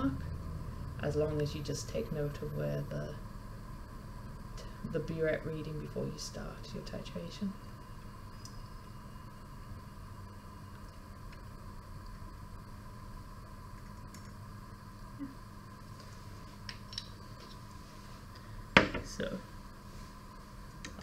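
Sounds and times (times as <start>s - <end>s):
steady electrical hum: 0.0s - 21.0s.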